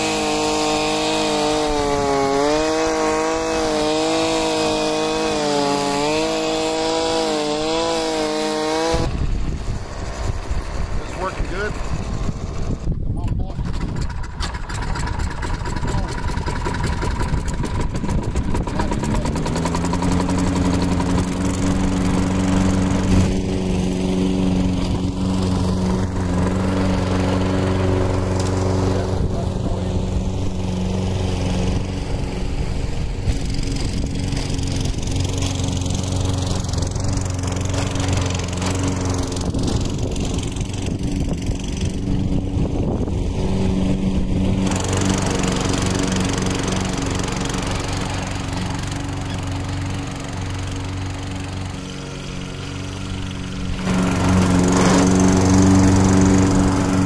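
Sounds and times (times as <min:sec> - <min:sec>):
lawn mower engine cutting grass: 0:00.0 - 0:57.0.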